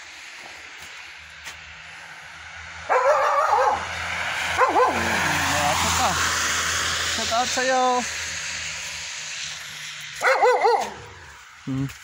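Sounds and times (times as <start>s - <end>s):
dog barking: 2.9s - 5.2s, 10.2s - 11.2s.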